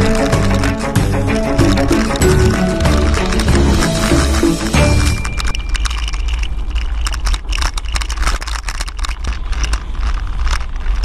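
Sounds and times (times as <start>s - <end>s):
rattling and clicking: 0.0s - 11.0s
vehicle road rumble: 0.0s - 11.0s.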